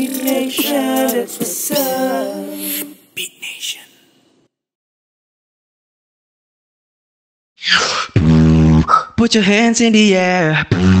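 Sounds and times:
beatboxer hissing burst: 7.6s - 9.2s
beatboxer low bass tone: 8.0s - 9.2s, 10.6s - 11.0s.

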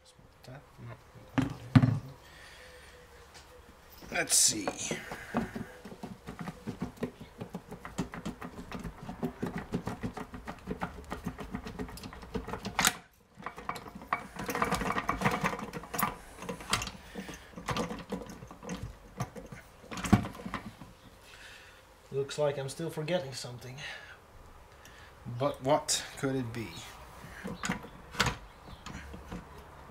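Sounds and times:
metal parts rattling and clunking: 4.0s - 21.0s, 26.7s - 29.9s.

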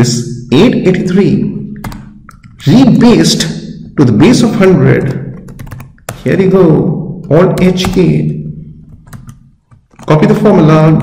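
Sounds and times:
person speaking: 0.0s - 11.0s.

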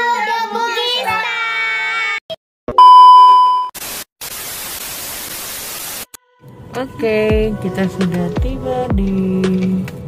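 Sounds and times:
high test-tone beep: 2.7s - 3.7s
tv static hiss: 3.8s - 6.1s.

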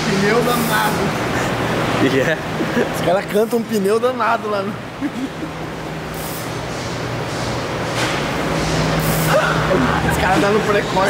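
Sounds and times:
workshop machinery hum: 0.0s - 11.0s.

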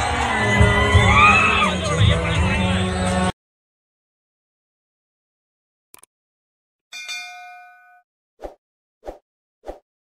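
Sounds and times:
bright metallic bell chime: 6.9s - 8.0s.

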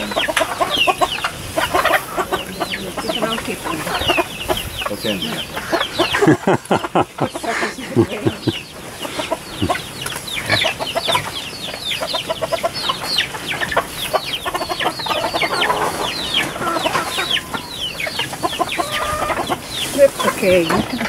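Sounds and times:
chickens clucking and calling: 0.0s - 21.0s.

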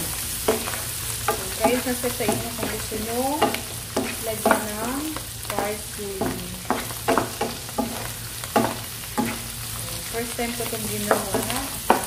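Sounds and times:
mushrooms and garlic sizzling: 0.0s - 12.0s
wooden spoon scraping a pan: 0.4s - 12.0s.

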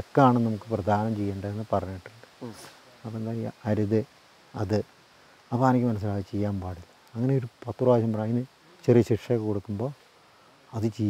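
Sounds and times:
man talking: 0.0s - 4.9s, 5.5s - 10.0s, 10.7s - 11.0s.

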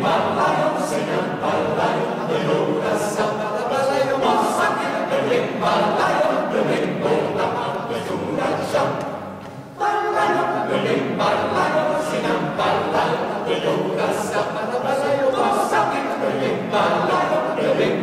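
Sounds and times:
choir singing a cappella: 0.0s - 18.0s.

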